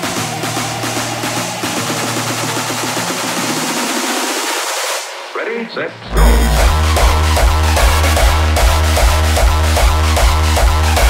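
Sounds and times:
low bass note: 0:06.0 - 0:07.5
white-noise sweep: 0:06.0 - 0:07.8.

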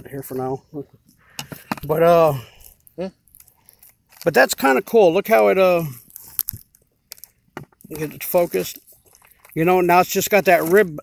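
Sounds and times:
person speaking: 0:00.0 - 0:03.3, 0:07.8 - 0:08.9.

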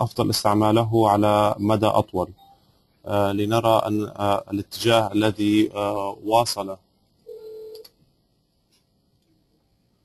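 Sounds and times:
two-tone electronic beep: 0:02.3 - 0:02.7.

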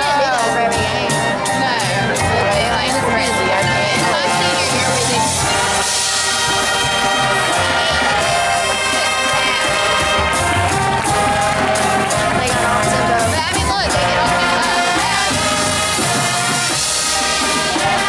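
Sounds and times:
brass sustained chords: 0:00.0 - 0:18.0
marching band playing: 0:00.0 - 0:18.0.

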